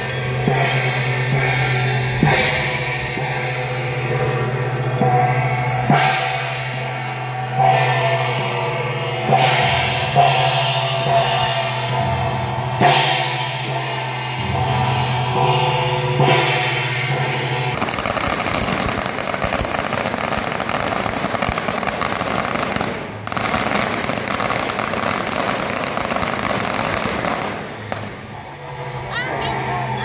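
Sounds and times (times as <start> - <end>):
procession music with drums: 0.0 - 30.0
firecrackers crackling: 17.8 - 28.8.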